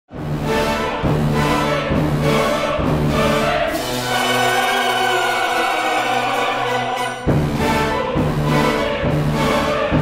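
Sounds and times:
orchestral music: 0:00.1 - 0:10.0
choir singing: 0:00.3 - 0:10.0.

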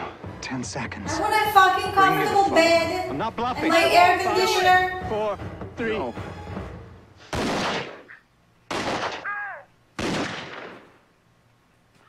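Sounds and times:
gunshots: 0:07.3 - 0:11.0.

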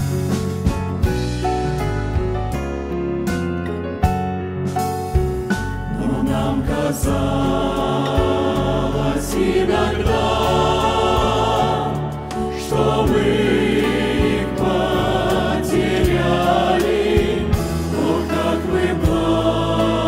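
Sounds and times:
low bass accompaniment: 0:00.0 - 0:20.0
choir singing a hymn: 0:05.9 - 0:20.0.

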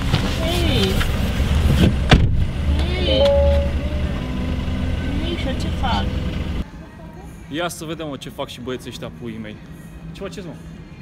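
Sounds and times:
car engine idling: 0:00.0 - 0:06.6
car door slamming: 0:01.7 - 0:02.5.

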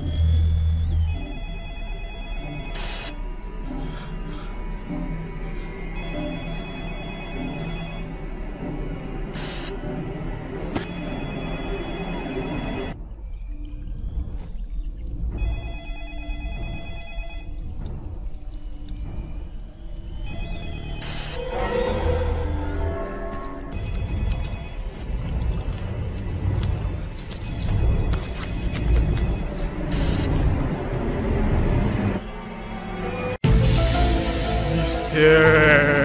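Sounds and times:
telephone ringing: 0:00.0 - 0:03.1, 0:06.0 - 0:08.2, 0:10.9 - 0:13.0, 0:15.4 - 0:17.6, 0:20.0 - 0:21.6
tense dark film music: 0:00.0 - 0:36.0.

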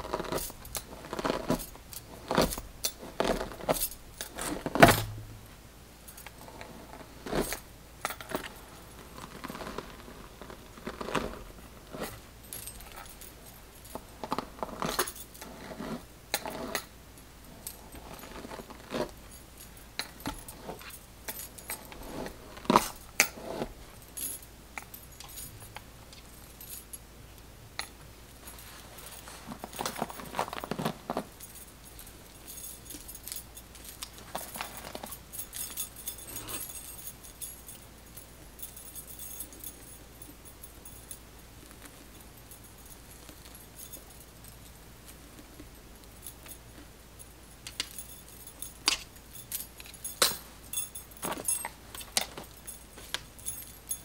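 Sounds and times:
metal bangles clinking: 0:00.0 - 0:05.3, 0:06.0 - 0:27.1, 0:27.8 - 0:54.0.

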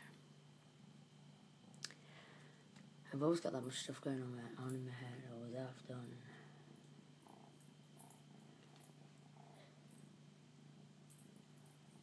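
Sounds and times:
faint low hum: 0:00.0 - 0:12.0
soft faint noises: 0:00.0 - 0:12.0.

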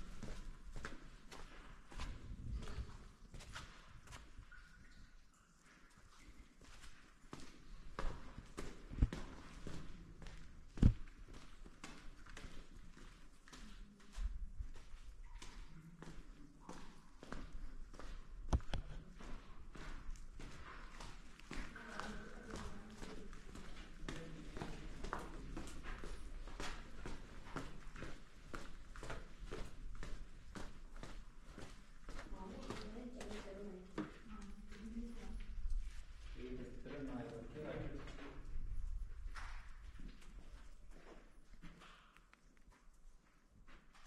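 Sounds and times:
footsteps walking: 0:06.0 - 0:37.1.

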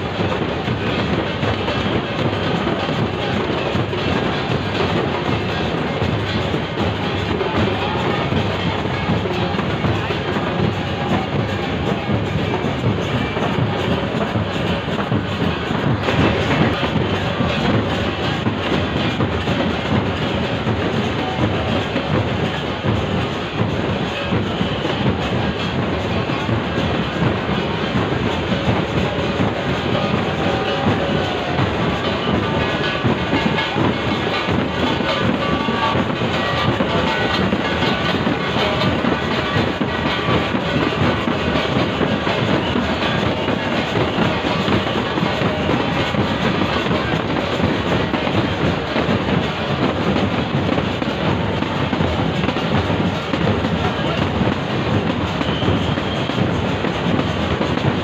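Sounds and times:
crowd voices: 0:00.0 - 0:58.0.

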